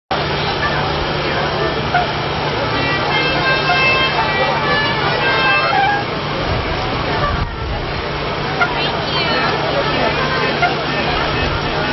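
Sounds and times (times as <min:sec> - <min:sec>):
crowd talking: 0:00.1 - 0:11.9
sustained high tones: 0:02.8 - 0:06.2.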